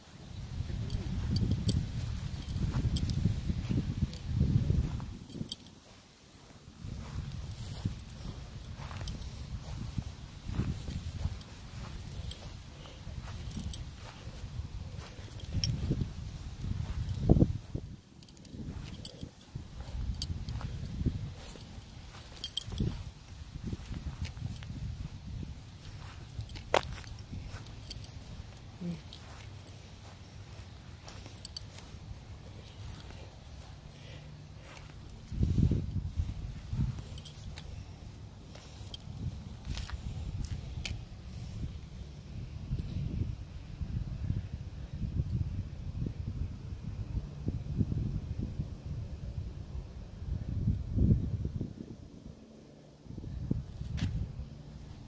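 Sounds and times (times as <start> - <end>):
footsteps on grass: 0.0 - 42.1
handling and wind noise: 0.0 - 55.0.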